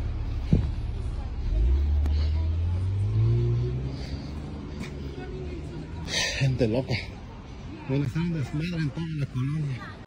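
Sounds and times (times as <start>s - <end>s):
car engine driving by: 0.0s - 7.4s
short thump: 0.4s - 0.8s.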